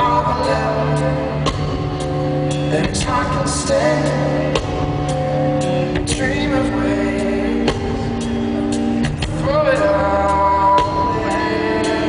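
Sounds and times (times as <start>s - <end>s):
live band playing slow blues: 0.0s - 12.0s.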